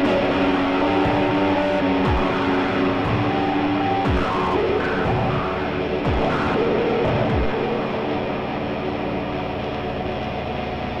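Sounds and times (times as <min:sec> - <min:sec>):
distorted noise music drone: 0:00.0 - 0:11.0
low tone sweeping down: 0:00.0 - 0:11.0.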